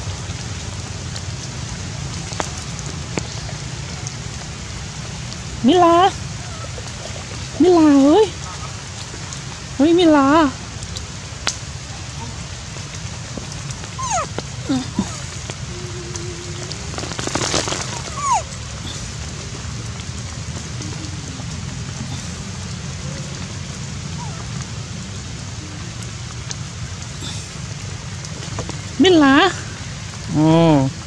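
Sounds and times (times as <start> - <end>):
rain on foliage: 0.0 - 31.0.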